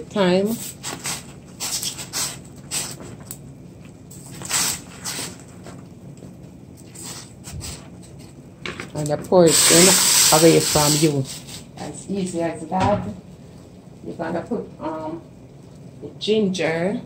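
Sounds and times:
water boiling and bubbling: 0.0 - 8.7, 9.4 - 11.8.

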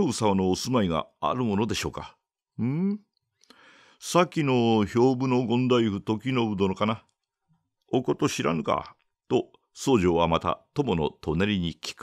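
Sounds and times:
man reading aloud: 0.0 - 3.2, 4.0 - 7.2, 7.8 - 12.0.

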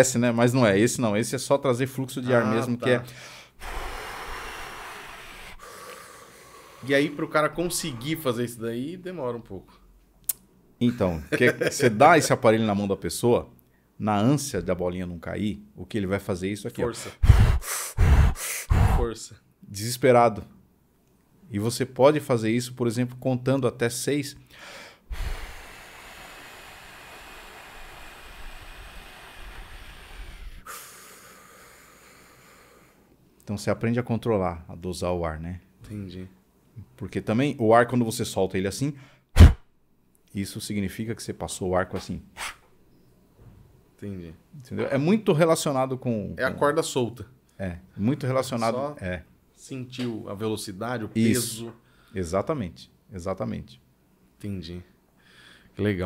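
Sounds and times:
steady rush of breath: 3.1 - 7.0, 17.0 - 19.1, 24.5 - 33.1
man blowing air through lips: 3.2 - 6.9, 17.1 - 19.1, 24.6 - 33.1, 39.4 - 39.6, 42.4 - 42.6.

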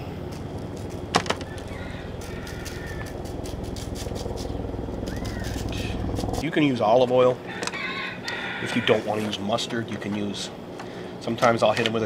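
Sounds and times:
steady low rumble: 0.0 - 7.4
shaker rattling: 1.6 - 6.4.

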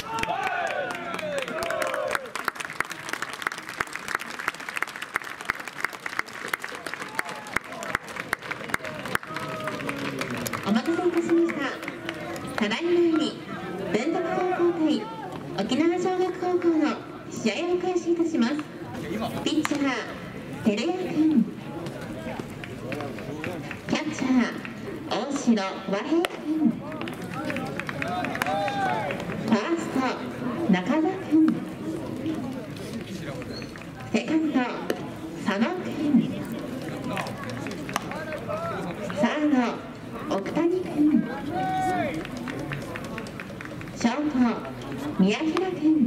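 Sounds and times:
people shouting and calling: 0.0 - 2.3, 28.0 - 29.2, 41.3 - 42.2
people calling and shouting: 8.6 - 46.0.

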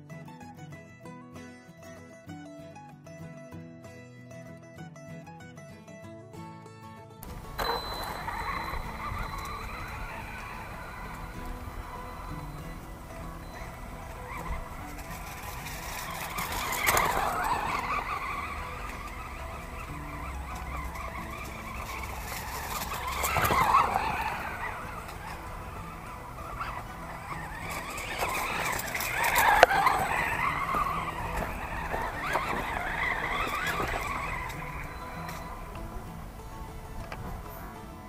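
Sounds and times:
electric motor whining: 7.2 - 38.0.

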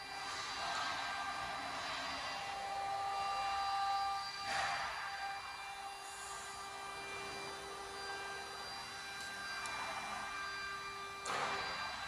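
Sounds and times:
machine whir with whining hum: 0.0 - 12.0.

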